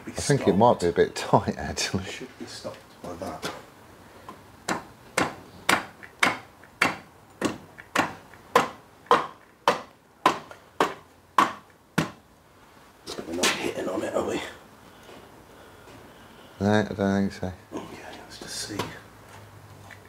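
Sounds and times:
sharp knocks on metal block: 4.7 - 12.2.

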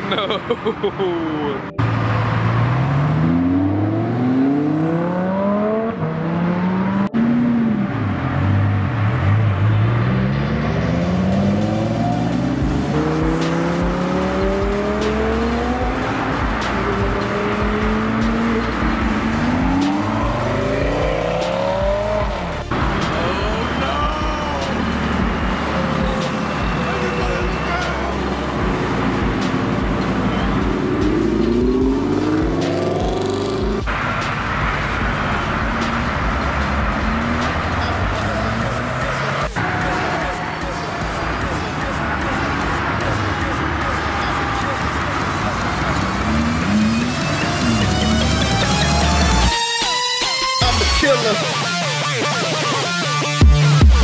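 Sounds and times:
sports car engines accelerating: 0.0 - 49.6.

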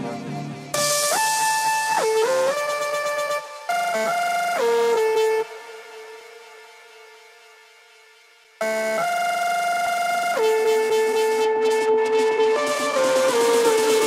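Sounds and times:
electronic dance music: 0.0 - 14.0
loud synth chord: 0.0 - 14.0
hi-hats: 0.2 - 14.0.

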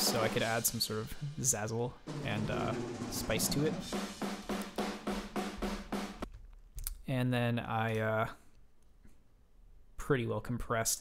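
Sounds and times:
quick drum hits: 0.0 - 6.3.

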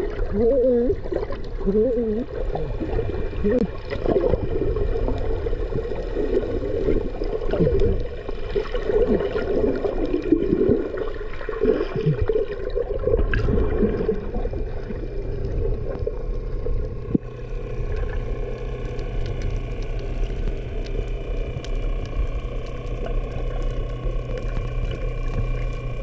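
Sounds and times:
underwater boat motor drone: 0.0 - 26.0.

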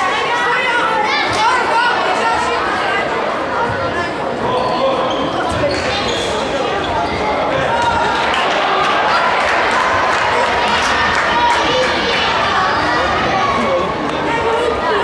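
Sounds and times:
spectators chattering: 0.0 - 15.0.

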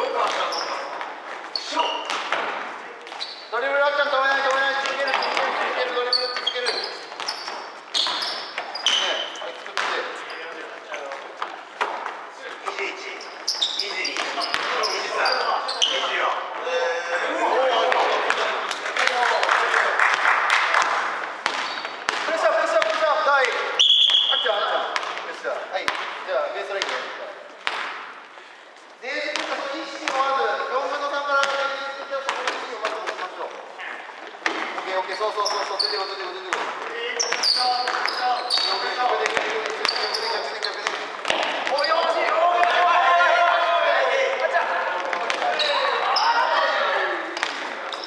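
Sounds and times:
players calling out: 12.6 - 19.3, 34.9 - 48.0.

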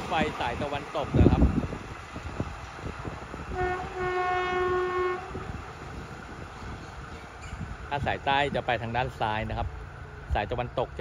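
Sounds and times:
faint train clicks: 0.0 - 11.0
distant locomotive horn: 3.5 - 5.9.

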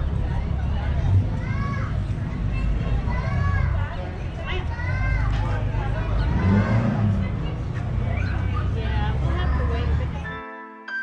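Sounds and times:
background voices: 0.0 - 10.3
railway car rumbling on track: 0.0 - 10.3.

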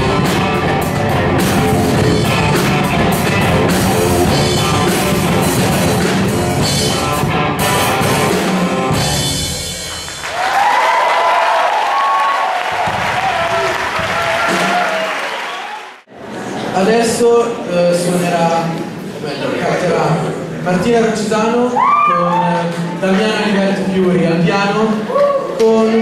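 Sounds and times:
rock band playing: 0.0 - 10.7, 12.8 - 15.1
audience applauding and cheering: 9.7 - 16.1.

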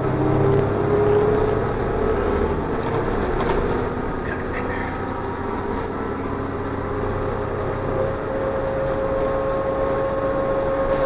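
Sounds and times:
bus engine hum: 0.0 - 11.0
drivetrain whine: 0.0 - 11.0
road noise: 0.0 - 11.0.

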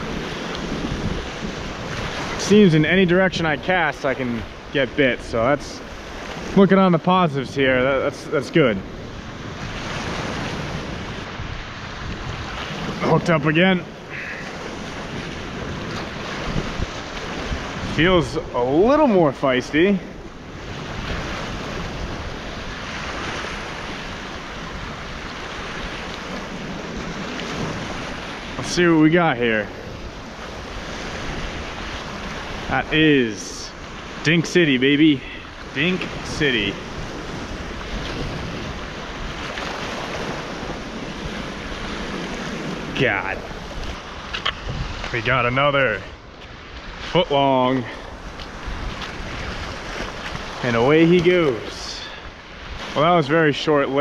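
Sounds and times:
sea waves washing against rocks: 0.0 - 54.0
wind buffeting microphone: 0.0 - 54.0.

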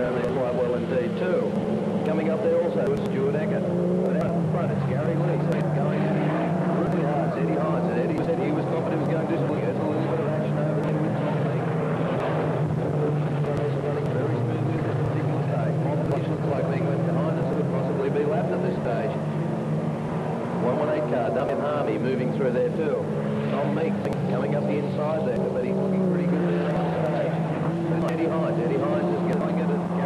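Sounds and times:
race car engines droning: 0.0 - 30.0.

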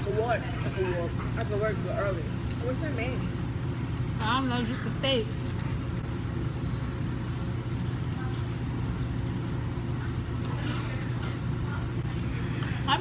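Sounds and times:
faint voices: 0.0 - 13.0
restaurant room hum: 0.0 - 13.0.

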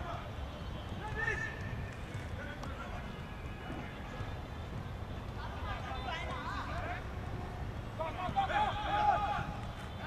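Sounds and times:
players shouting: 7.9 - 10.0.

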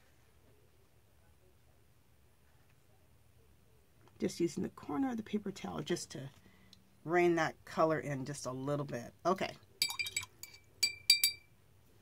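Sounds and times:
paintbrush clinking glass jar: 9.8 - 11.5.

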